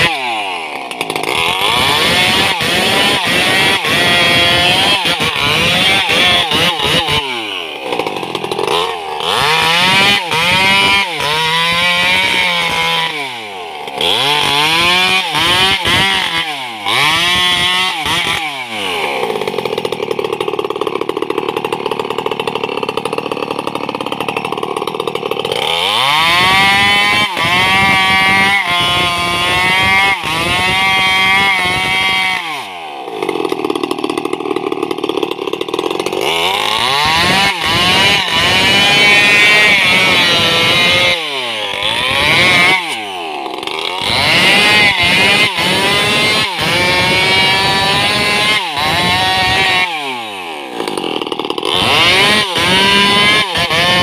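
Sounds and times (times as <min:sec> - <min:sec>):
chainsaw cutting wood: 0:00.0 - 0:54.0.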